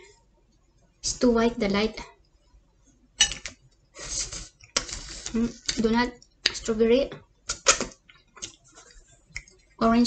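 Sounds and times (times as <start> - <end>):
dishes clattering: 3.2 - 3.6.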